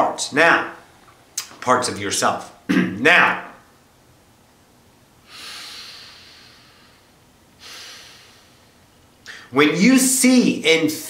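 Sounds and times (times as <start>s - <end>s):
woman breathing: 5.2s - 9.5s.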